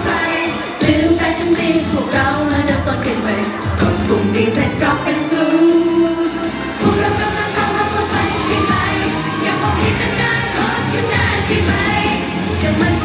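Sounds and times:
female voices singing: 0.0 - 13.0
live pop song with driving beat: 0.0 - 13.0.

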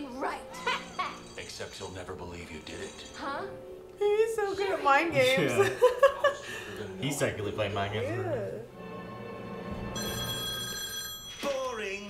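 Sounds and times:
low background music: 0.0 - 12.0
telephone ringing: 9.8 - 12.0.

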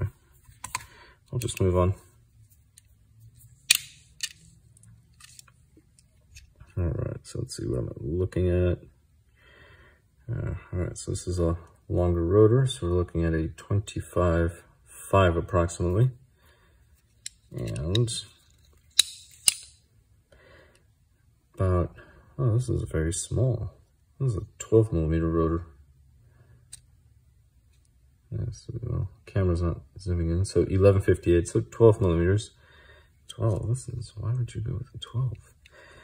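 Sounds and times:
caliper clicks: 18.9 - 19.8.

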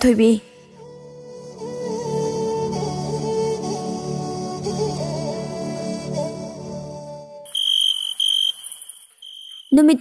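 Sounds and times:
soft background music: 0.0 - 7.5
high steady electronic beep: 7.5 - 10.0.

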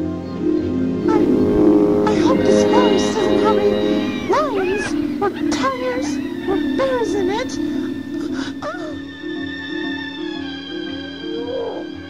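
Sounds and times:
held accompaniment tone: 0.9 - 12.0.

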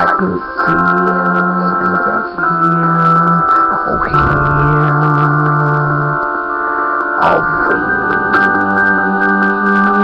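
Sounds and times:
keyboard chords: 0.0 - 10.0
low held note: 3.7 - 6.2.

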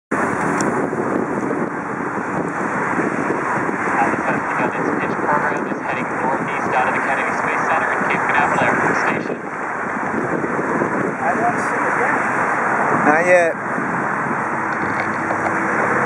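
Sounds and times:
wind buffeting microphone: 0.1 - 16.0.

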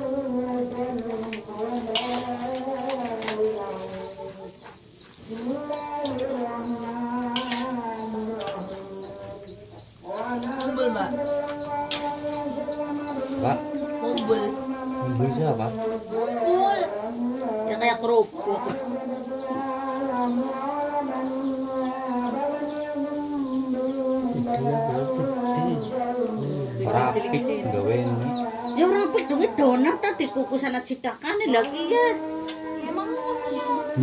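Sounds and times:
person singing long notes: 0.0 - 34.0.

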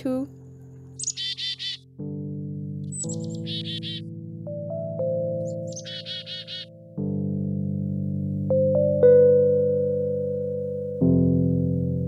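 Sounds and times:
chickadee calling: 0.0 - 1.8, 2.9 - 4.0, 5.4 - 6.7
soft keyboard music: 0.0 - 12.0.

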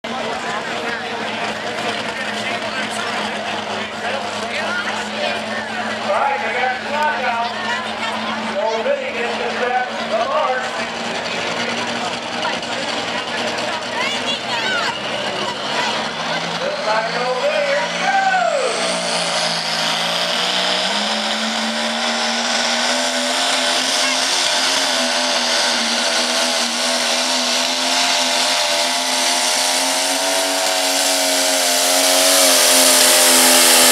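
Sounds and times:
tractor engine running: 0.0 - 33.9.

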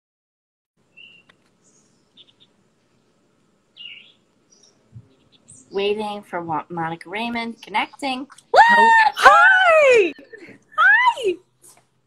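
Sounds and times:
birds chirping faintly: 0.8 - 12.0.

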